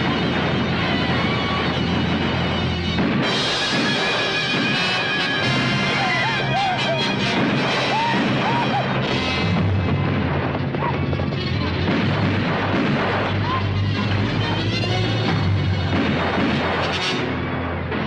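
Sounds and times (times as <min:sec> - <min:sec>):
rifle fire: 0:00.0 - 0:14.6, 0:15.3 - 0:18.0
orchestral score: 0:00.0 - 0:18.0
sharp gunshots: 0:00.0 - 0:18.0.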